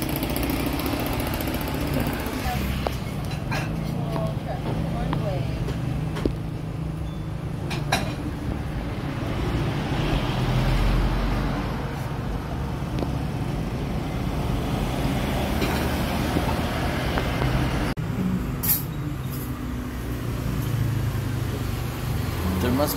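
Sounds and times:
motor scooters passing by: 0.0s - 6.6s, 8.4s - 18.0s, 19.7s - 22.9s.

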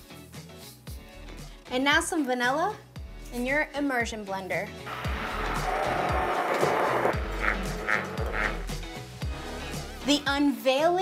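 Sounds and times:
immersion blender whipping cream: 4.9s - 8.5s.

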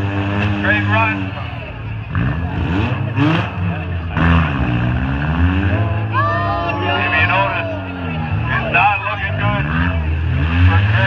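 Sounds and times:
car engines revving: 0.0s - 11.0s.

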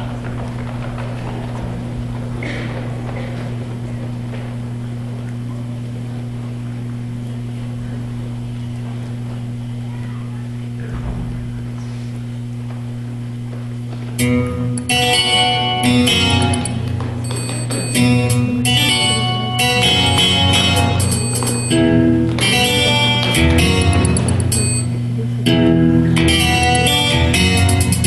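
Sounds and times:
audience murmur: 0.0s - 14.2s, 15.0s - 28.0s
low electrical hum: 0.0s - 28.0s.

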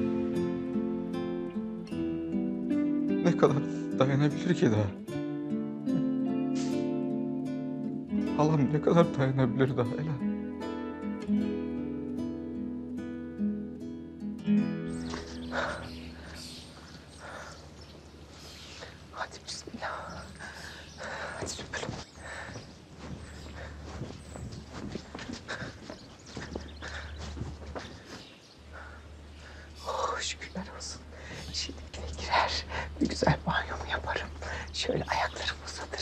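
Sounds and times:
footsteps: 15.0s - 18.2s, 20.3s - 28.4s.

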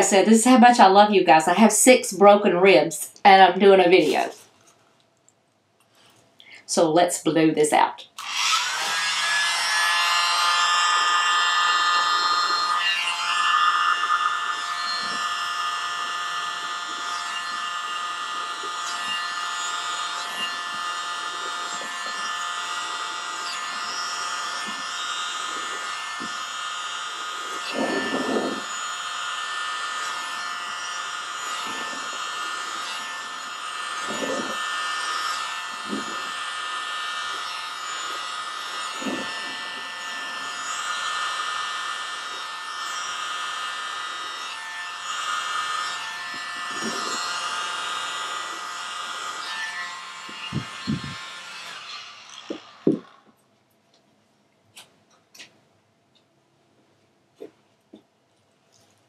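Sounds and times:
electric blower motor whine: 8.2s - 53.4s.

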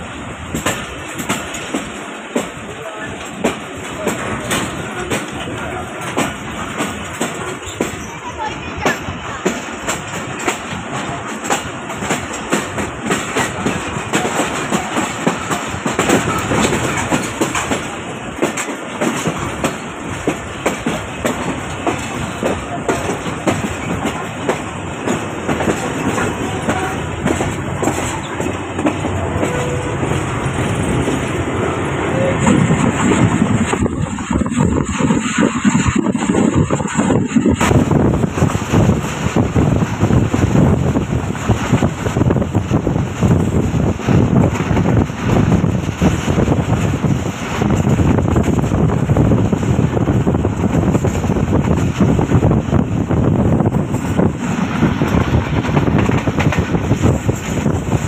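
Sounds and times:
train running rumble: 0.0s - 58.0s
train wheels clacking over rail joints: 0.0s - 58.0s.

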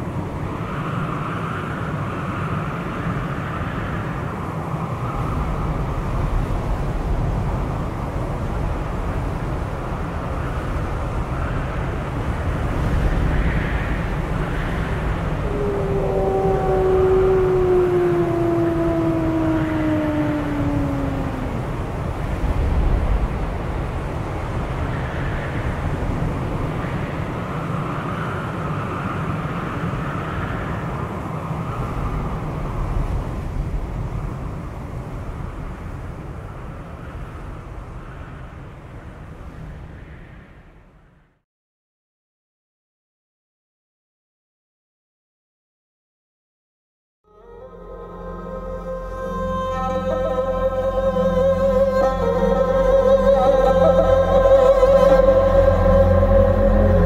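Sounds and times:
blizzard wind rumbling: 0.0s - 41.4s, 47.4s - 57.0s
wolf howling: 15.2s - 22.1s, 47.3s - 57.0s.

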